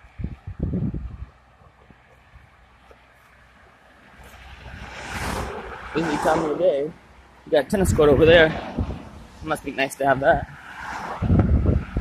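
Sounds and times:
vehicle approaching on road: 0.0 - 12.0.

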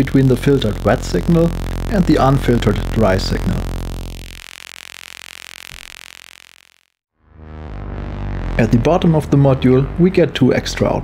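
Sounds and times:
buzzy synthesizer tone: 0.0 - 11.0.

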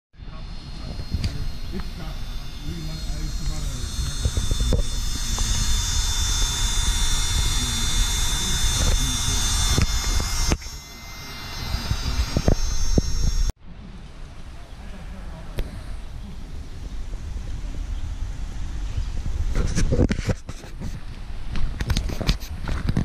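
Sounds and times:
electric air pump whining: 0.2 - 13.6.

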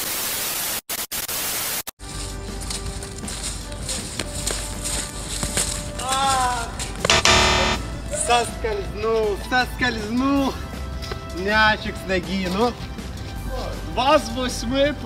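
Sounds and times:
background music: 2.0 - 15.0
tv static: 7.1 - 7.8
harsh buzzer: 7.1 - 8.0.

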